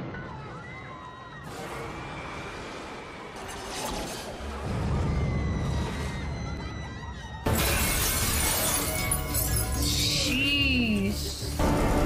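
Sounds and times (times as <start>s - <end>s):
movie score: 0.0s - 12.0s
glass pane shattering: 7.5s - 10.2s.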